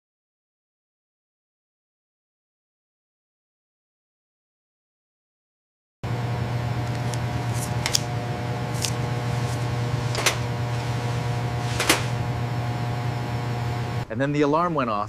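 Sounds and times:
electrical hum of equipment: 6.0 - 14.1.

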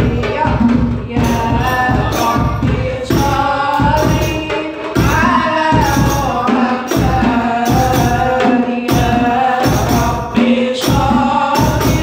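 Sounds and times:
hand-struck frame drums: 0.0 - 12.0
woman singing into a microphone: 0.0 - 12.0.

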